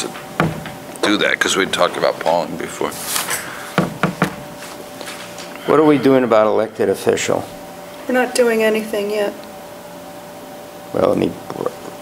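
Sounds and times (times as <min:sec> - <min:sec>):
knocks: 0:00.0 - 0:00.9, 0:03.8 - 0:04.5.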